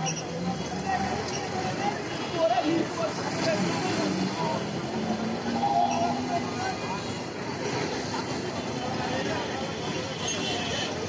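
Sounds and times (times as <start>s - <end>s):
heavy traffic rumble: 0.0s - 11.0s
people talking: 0.0s - 11.0s.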